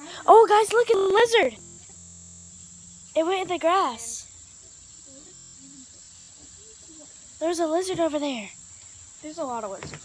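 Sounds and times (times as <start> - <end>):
insects buzzing chorus: 0.0 - 10.0.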